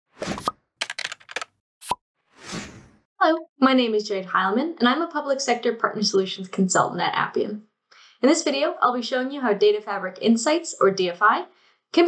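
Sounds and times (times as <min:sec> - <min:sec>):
quick clicks: 0:00.2 - 0:02.0.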